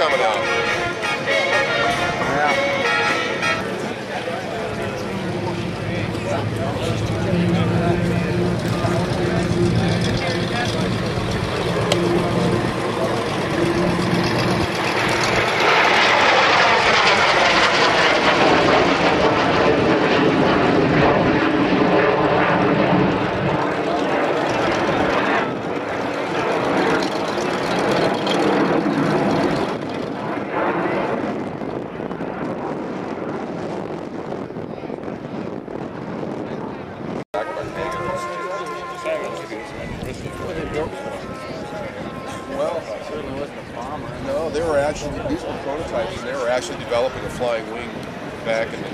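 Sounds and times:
jet engines roaring: 0:00.0 - 0:48.9.

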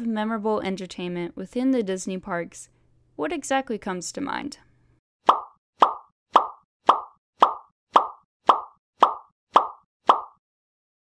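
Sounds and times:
short pop sound effects: 0:05.3 - 0:10.4.

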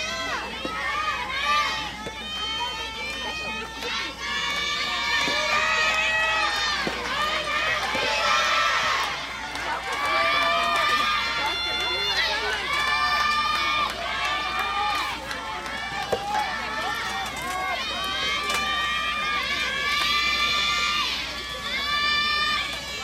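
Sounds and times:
high voices cheering: 0:00.0 - 0:23.0.

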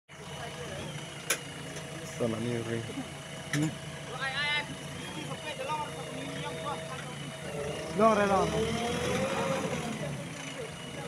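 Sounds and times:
diesel engine running: 0:00.1 - 0:11.0
faint voices: 0:00.1 - 0:11.0.

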